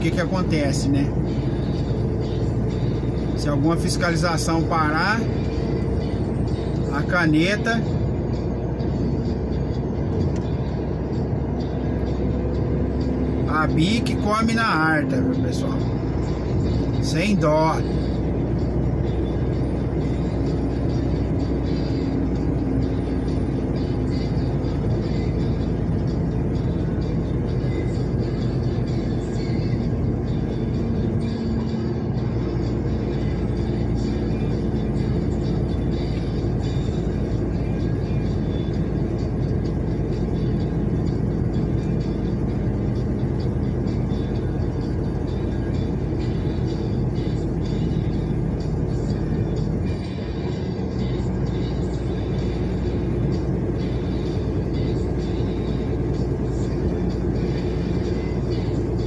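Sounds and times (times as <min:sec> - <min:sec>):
music playing: 0:00.0 - 0:59.0
road noise: 0:00.0 - 0:59.0
truck engine drone: 0:00.0 - 0:59.0.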